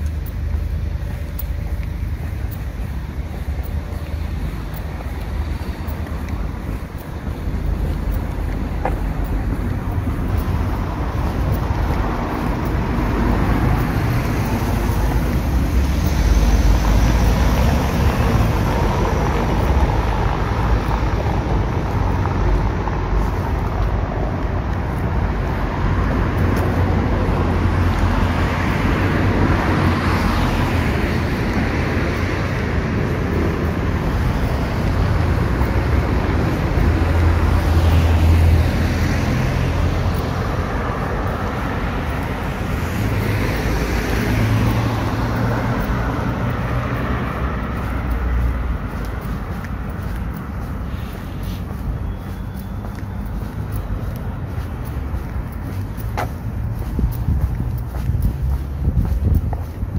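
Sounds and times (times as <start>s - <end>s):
cars passing: 0.0s - 59.9s
steady low traffic rumble: 0.0s - 59.9s.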